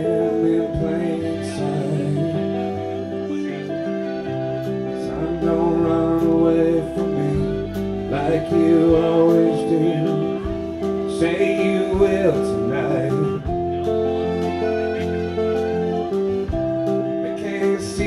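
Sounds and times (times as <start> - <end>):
live band playing: 0.0 - 18.0
person singing: 0.0 - 18.0.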